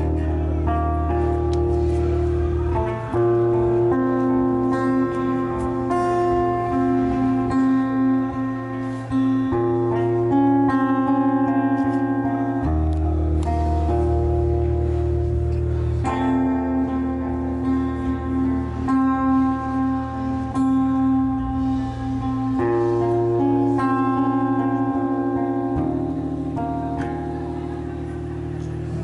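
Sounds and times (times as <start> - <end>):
acoustic guitar strumming: 0.0 - 29.0
steady bass: 0.0 - 29.0.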